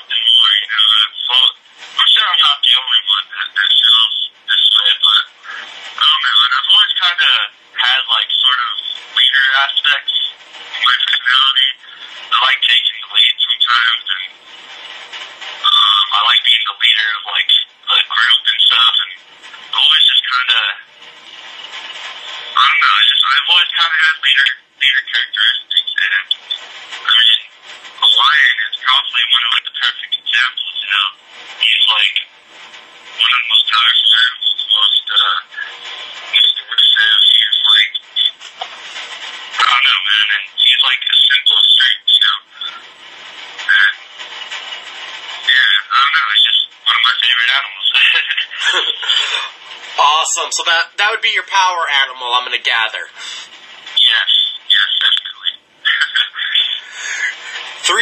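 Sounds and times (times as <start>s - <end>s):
man talking over telephone line: 0.0s - 14.4s, 15.6s - 20.9s, 22.3s - 32.3s, 33.2s - 38.6s, 39.5s - 42.9s, 43.6s - 44.0s, 45.4s - 58.0s.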